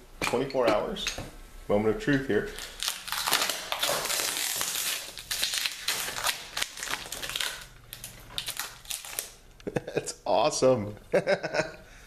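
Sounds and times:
plastic sheeting crinkling: 2.4 - 9.4.

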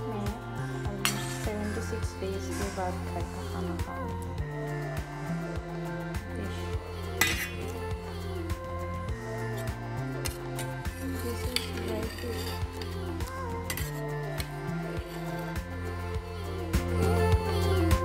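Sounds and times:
background music with steady beat: 0.0 - 18.0
spoon scraping metal bowl: 1.0 - 3.0, 6.5 - 7.9, 9.4 - 15.6.

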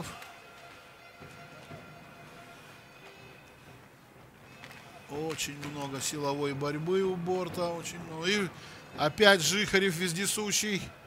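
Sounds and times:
crowd noise: 0.0 - 11.0
faint music: 0.0 - 11.0.

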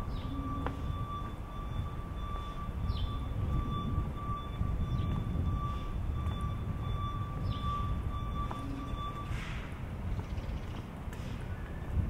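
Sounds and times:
constant high-pitched whine: 0.0 - 12.0
low rumble: 0.0 - 12.0.

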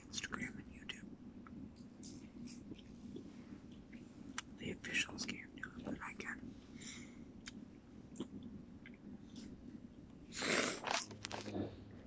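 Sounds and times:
man whispering: 0.0 - 1.2, 4.6 - 6.5.

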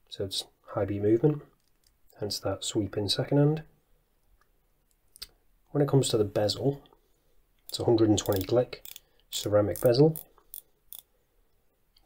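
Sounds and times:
watch bezel clicking: 7.6 - 11.1.

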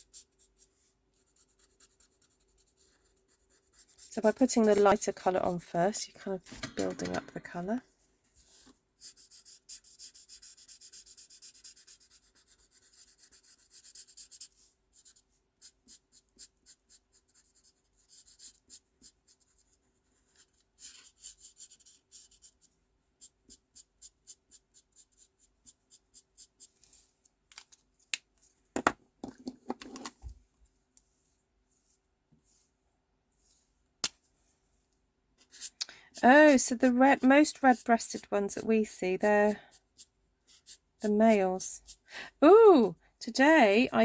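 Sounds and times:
marker scratching on card: 0.0 - 5.0, 9.0 - 26.8, 35.4 - 38.3, 39.5 - 42.0.

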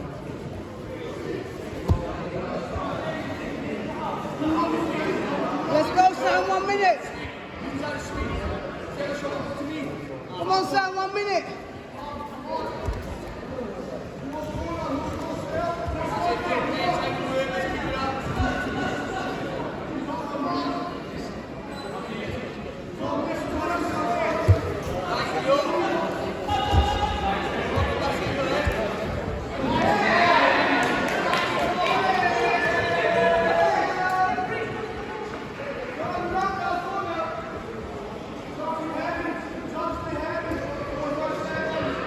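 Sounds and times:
indistinct voices in echoing hall: 0.0 - 42.0.

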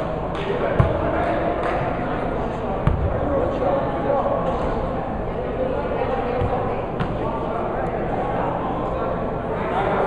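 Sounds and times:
basketball bouncing on wooden floor: 6.4 - 7.1.

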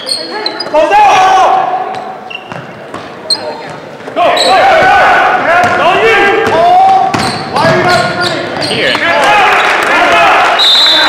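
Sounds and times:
sneakers squeaking: 0.0 - 0.9, 1.8 - 4.9, 5.6 - 9.7
referee whistle blast: 10.6 - 11.0.

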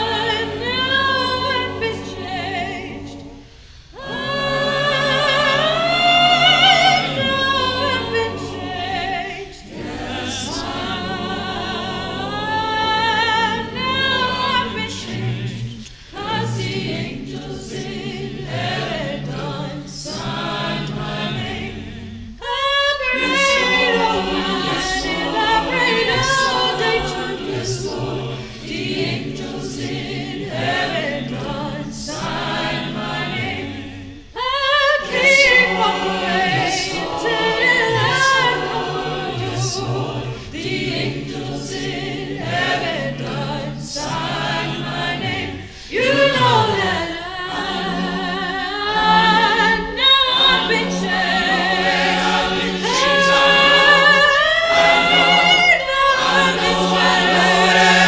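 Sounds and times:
choir singing a cappella: 0.0 - 58.0.

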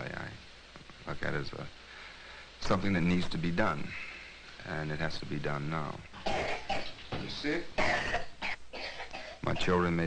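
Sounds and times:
child coughing: 6.2 - 7.0, 7.8 - 9.4.

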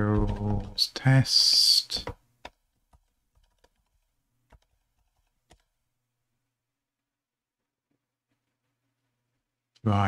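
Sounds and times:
faint keyboard keystrokes: 1.3 - 5.7.

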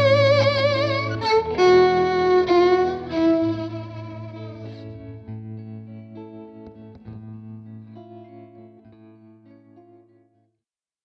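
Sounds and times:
overdriven guitar note: 0.0 - 9.4.

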